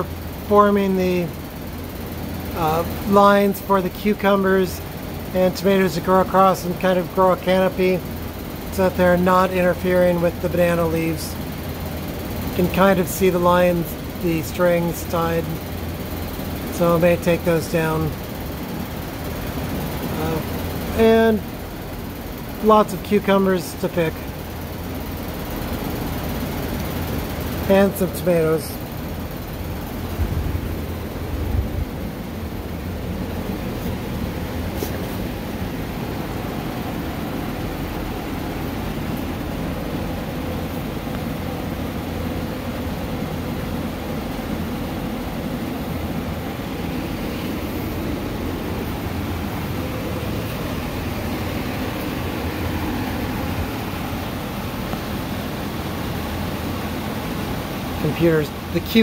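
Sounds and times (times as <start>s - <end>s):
fan whirring with low hum: 0.0s - 59.0s.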